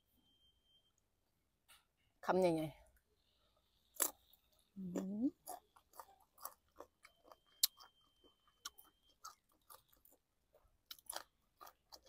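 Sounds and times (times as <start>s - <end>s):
person chewing food: 3.5s - 12.0s.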